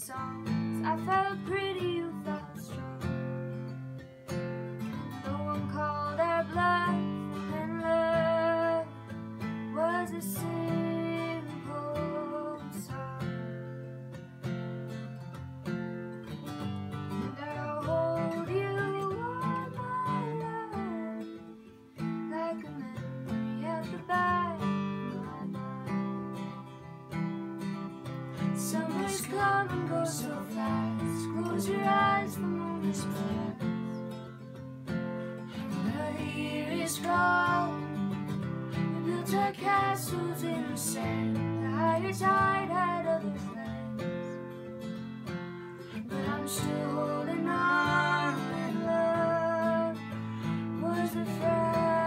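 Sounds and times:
acoustic guitar strummed: 0.0 - 52.0.

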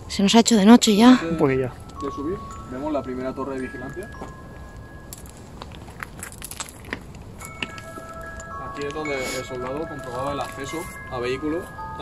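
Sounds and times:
faint music of held tones: 0.1 - 5.8, 7.4 - 12.0
footsteps on stony dirt path: 4.0 - 11.1.

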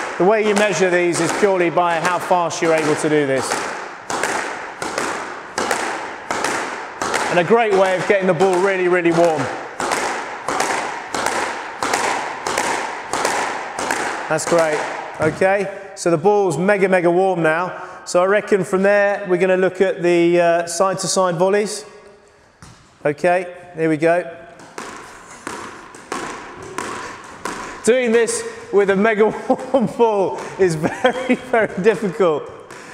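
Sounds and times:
ball smacking court wall: 0.0 - 15.7, 22.6 - 23.0, 24.4 - 32.9
racket smacking squash ball: 0.0 - 15.8, 22.4 - 23.0, 24.4 - 32.9.

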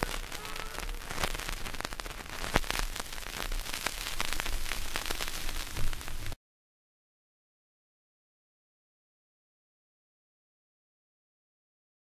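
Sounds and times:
loud vinyl pops: 0.0 - 6.4
vinyl record crackle and hiss: 0.0 - 6.4.

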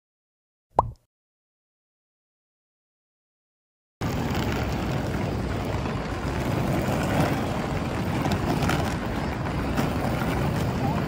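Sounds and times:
city street rumble: 4.0 - 11.0.

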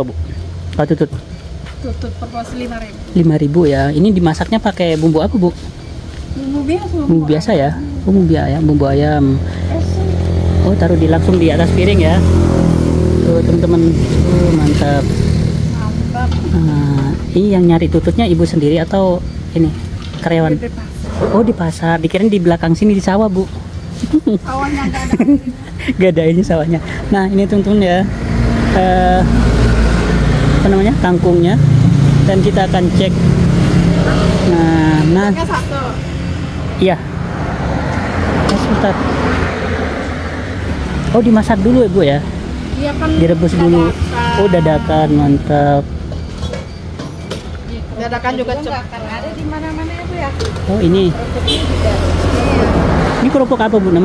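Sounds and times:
low traffic hum: 0.0 - 54.0
vehicle passing: 0.0 - 54.0
voices: 0.0 - 54.0.

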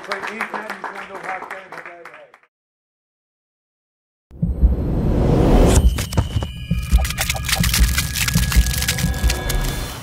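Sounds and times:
steady high tones: 5.7 - 9.2
rapid clicks and ticks: 6.7 - 10.0.

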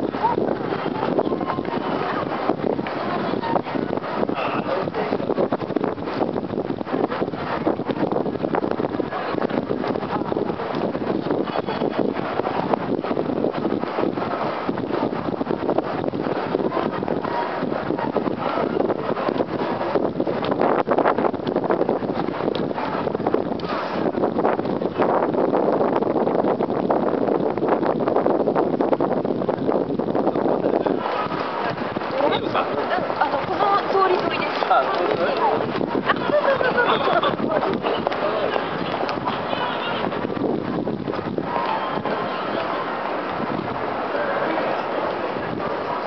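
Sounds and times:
wind buffeting microphone: 0.0 - 46.0.

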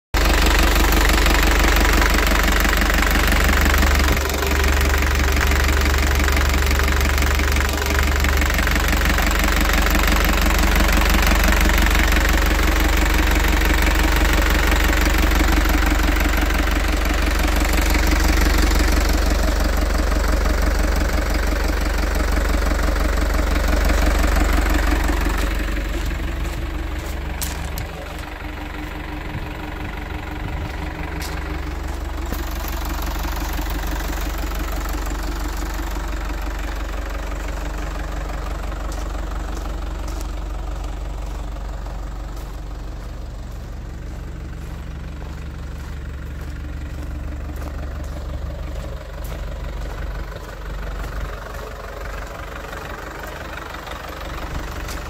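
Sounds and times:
diesel truck engine idling: 0.1 - 55.0.

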